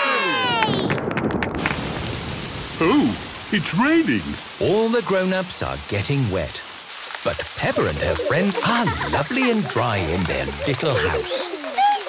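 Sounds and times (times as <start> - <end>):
hiss of falling rain: 1.6 - 12.0.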